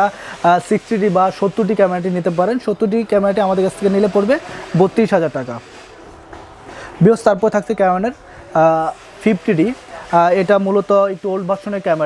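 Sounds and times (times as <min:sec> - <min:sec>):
man speaking: 0:00.0 - 0:05.7, 0:07.0 - 0:12.0.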